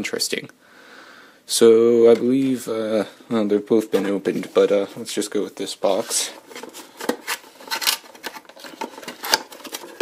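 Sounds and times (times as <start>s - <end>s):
cardboard scraping and rustling: 5.9s - 10.0s.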